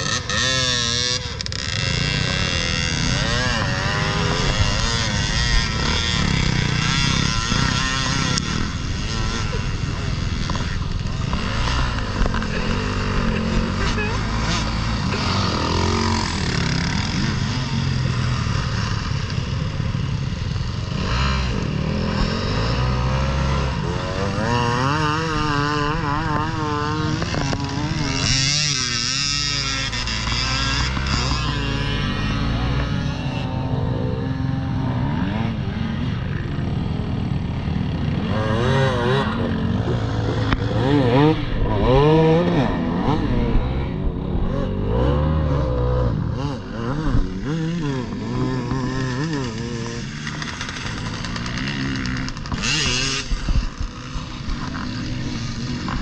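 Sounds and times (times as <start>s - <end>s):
dirt bikes revving: 0.0s - 56.0s.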